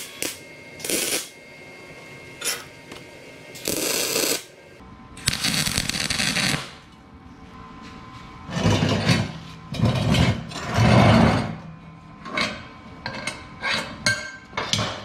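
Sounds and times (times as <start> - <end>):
crackling arc welding: 0.0 - 1.4, 3.5 - 4.6, 5.2 - 6.9.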